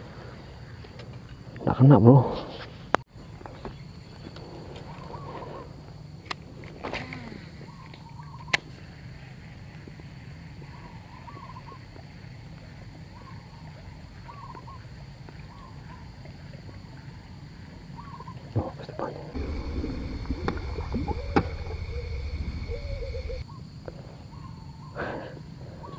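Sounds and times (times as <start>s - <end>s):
bird warbling call: 13.2s - 14.9s, 18.0s - 18.5s
faint high drone: 19.3s - 23.6s.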